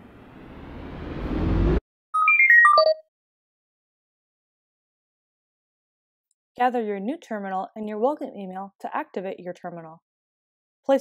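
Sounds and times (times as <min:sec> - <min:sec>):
electronic chime jingle: 0:02.2 - 0:03.0.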